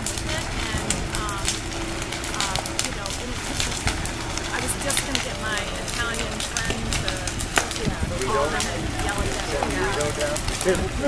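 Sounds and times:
fire crackling and popping: 0.0 - 11.0.

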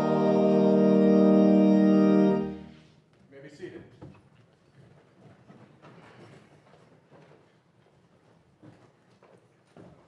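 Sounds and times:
soft knocks and shuffles: 2.8 - 10.0.

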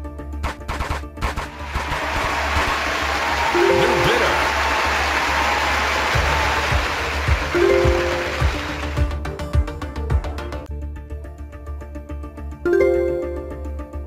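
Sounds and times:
background music: 0.0 - 14.0.

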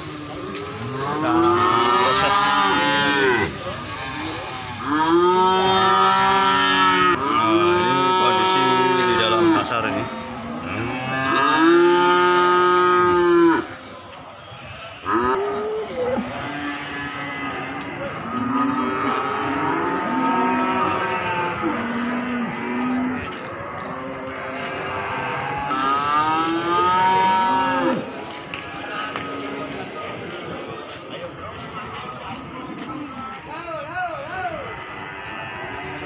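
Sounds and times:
cattle mooing: 0.4 - 3.6, 4.2 - 9.8, 10.6 - 13.7, 15.0 - 28.1.

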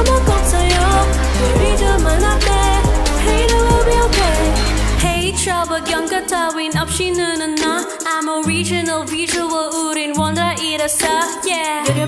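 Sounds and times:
instrumental backing track: 0.0 - 12.0
woman singing pop: 0.0 - 12.0.

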